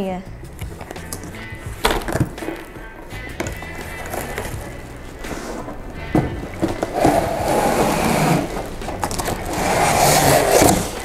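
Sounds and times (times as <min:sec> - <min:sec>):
cardboard scraping against cardboard: 0:03.8 - 0:11.0.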